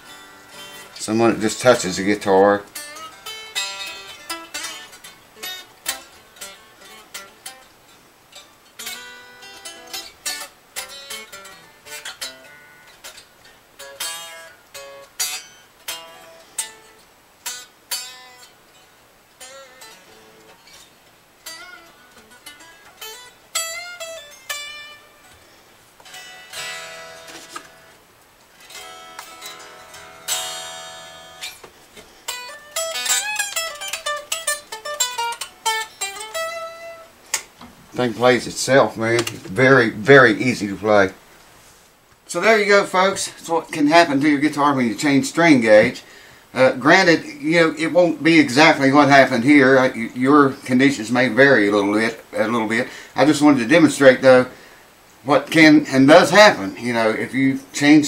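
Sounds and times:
electric guitar playing: 0.0s - 41.4s, 42.1s - 58.0s.

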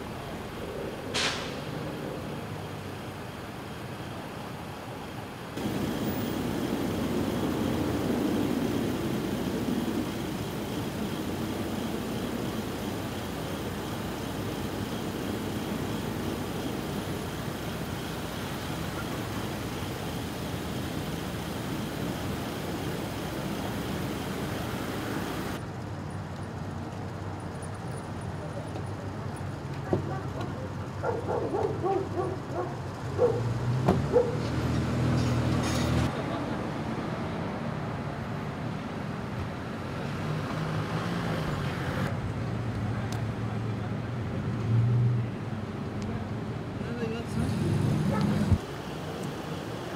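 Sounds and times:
vehicle rumble on street: 0.0s - 49.9s
steady low hum: 5.3s - 25.6s.

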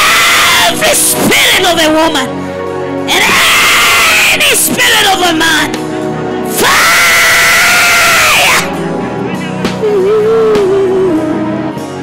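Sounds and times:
woman screaming into microphone: 0.0s - 1.6s, 3.1s - 4.8s, 6.6s - 8.7s
church music: 0.0s - 12.0s.

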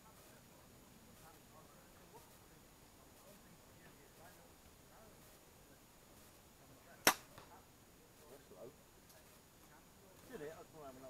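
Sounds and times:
bow string snap: 7.0s - 7.6s.

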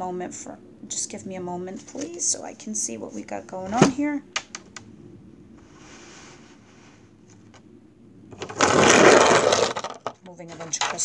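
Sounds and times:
soft sliding on tabletop: 5.6s - 7.4s.

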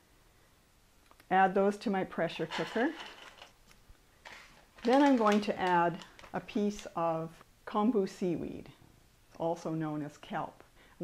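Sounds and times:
beans clattering into pot: 2.4s - 3.6s.

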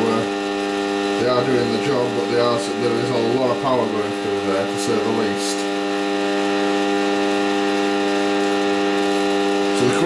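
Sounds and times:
electrical buzzing hum: 0.0s - 10.0s.

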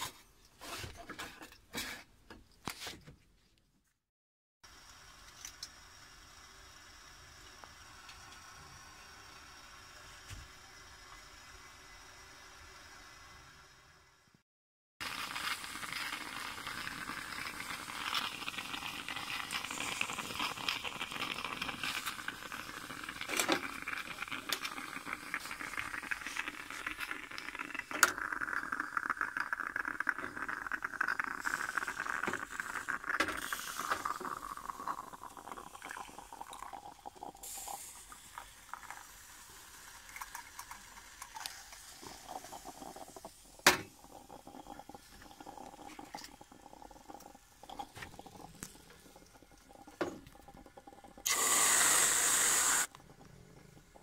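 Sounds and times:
moka pot sputtering and gurgling: 4.6s - 14.4s, 15.0s - 54.0s.

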